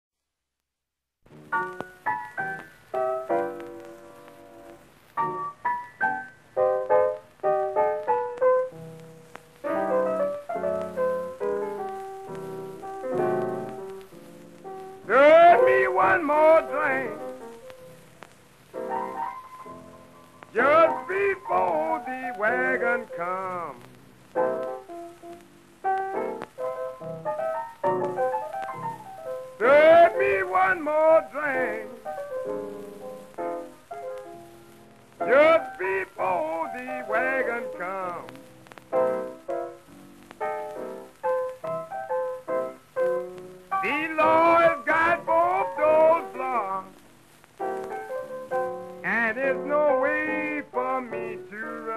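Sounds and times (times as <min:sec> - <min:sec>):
blues piano: 0:01.3 - 0:51.9.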